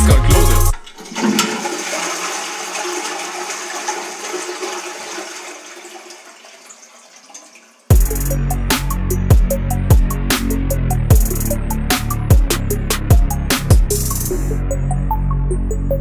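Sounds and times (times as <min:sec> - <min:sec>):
toilet flushing: 0:00.1 - 0:08.0.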